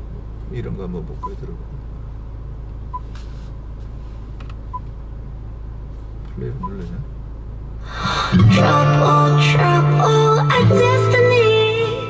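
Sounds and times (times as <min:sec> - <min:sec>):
low cabin hum: 0:00.0 - 0:12.0
touchscreen beeps: 0:06.6 - 0:06.8.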